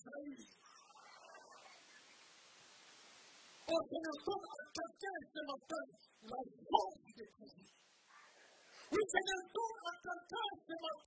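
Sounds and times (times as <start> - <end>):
man's voice through a microphone: 0.0 - 0.8, 3.6 - 7.8, 8.8 - 11.0
steady hiss: 0.1 - 3.8.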